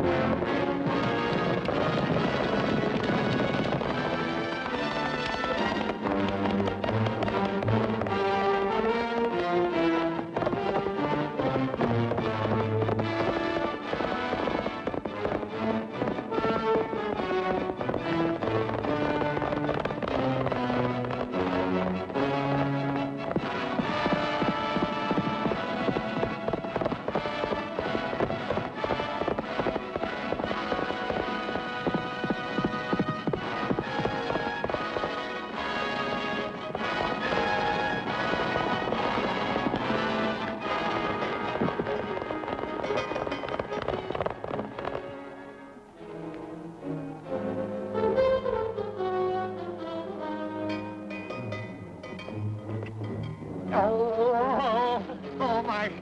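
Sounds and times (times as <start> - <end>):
galloping horse hoofbeats: 0.0 - 45.2
orchestral film score: 0.0 - 56.0.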